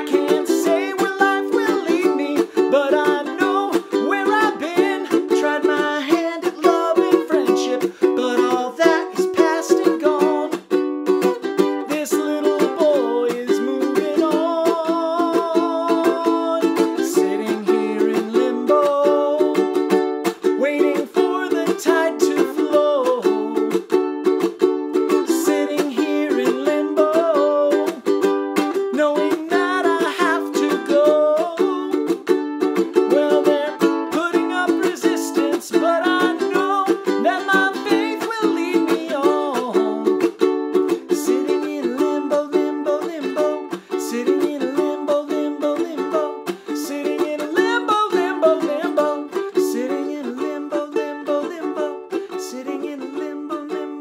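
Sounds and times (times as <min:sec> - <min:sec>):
man singing: 0:00.0 - 0:24.0, 0:25.0 - 0:54.0
ukulele strumming: 0:00.0 - 0:54.0.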